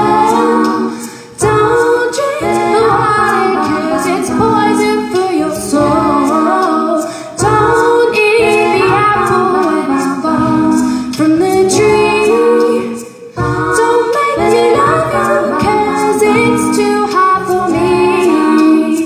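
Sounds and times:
looped vocal harmonies: 0.0 - 19.0
woman singing a cappella: 0.0 - 19.0.

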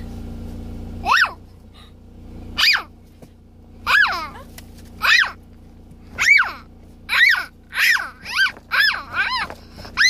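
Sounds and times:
car cabin hum: 0.0 - 10.0.

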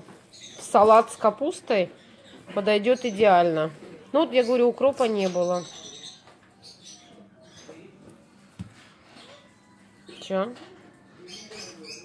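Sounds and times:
faint voices: 2.2 - 12.0
soft knock: 8.6 - 8.8.

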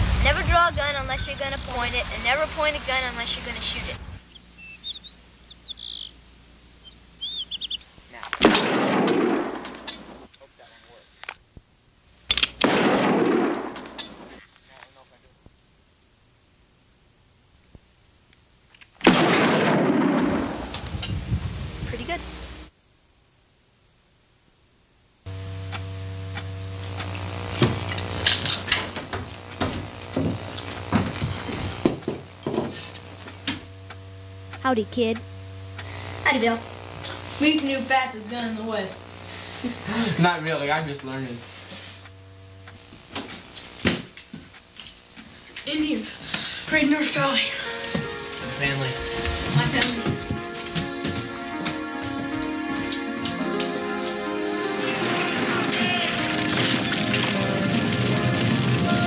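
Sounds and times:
electrical hum: 0.0 - 59.0
birds chirping faintly: 1.0 - 8.2
gunshots: 8.4 - 9.9, 12.6 - 14.3, 19.0 - 20.7.

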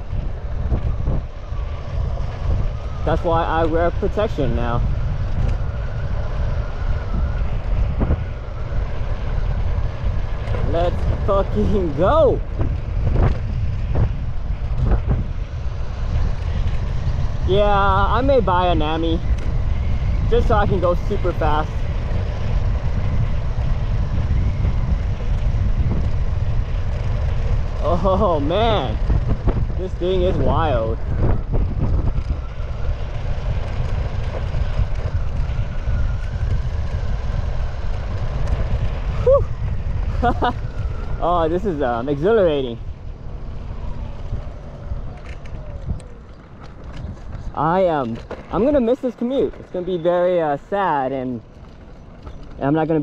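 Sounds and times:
scooter road rumble: 0.0 - 53.0
wind buffeting microphone: 0.0 - 53.0.

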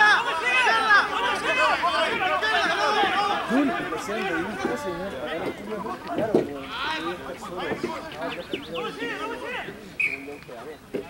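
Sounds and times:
people shouting and calling out: 0.0 - 10.7.

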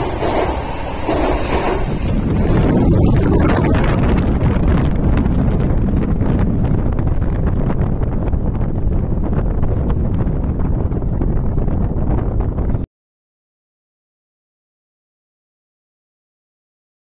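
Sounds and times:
subway train rumbling: 0.0 - 12.8
air rush buffeting microphone: 0.0 - 12.9.

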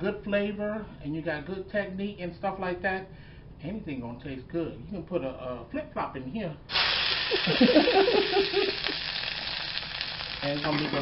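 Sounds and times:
peppers sizzling in hot oil: 6.7 - 11.0
man laughing: 7.3 - 9.0.

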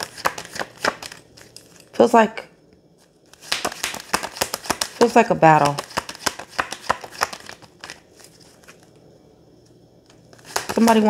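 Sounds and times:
cards shuffling: 0.0 - 2.0, 3.0 - 9.0, 10.0 - 11.0.

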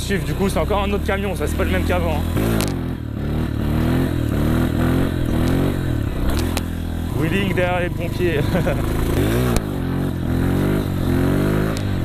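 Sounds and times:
dirt bike engine revving: 0.0 - 12.0
sharp clacks: 11.6 - 12.0.

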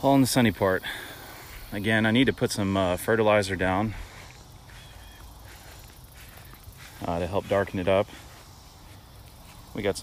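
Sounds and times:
faint high chirps: 4.0 - 7.0.

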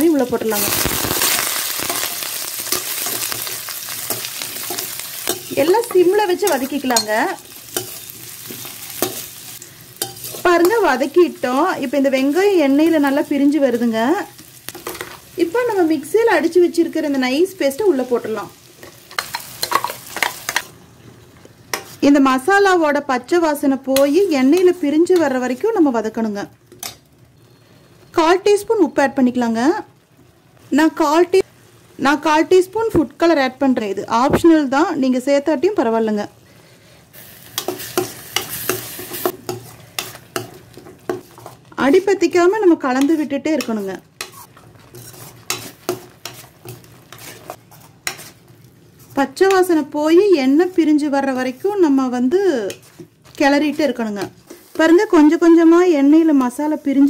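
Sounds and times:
oil sizzling: 0.0 - 57.0
spoon scraping steel pan: 10.0 - 11.0, 43.0 - 48.4.

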